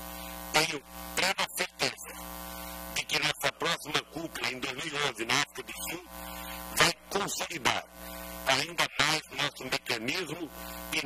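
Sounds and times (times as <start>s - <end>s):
electrical mains hum: 0.0s - 11.0s
man speaking: 0.6s - 2.2s, 3.0s - 6.1s, 6.7s - 11.0s.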